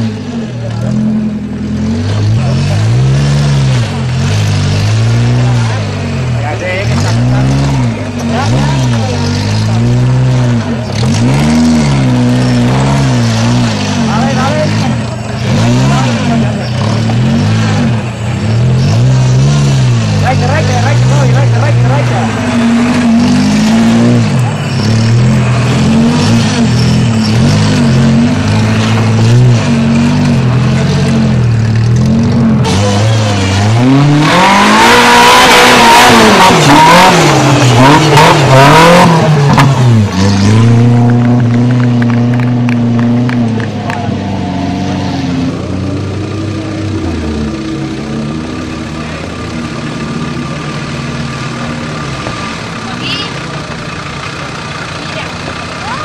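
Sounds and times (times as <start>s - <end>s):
buggy engine revving: 0.0s - 56.0s.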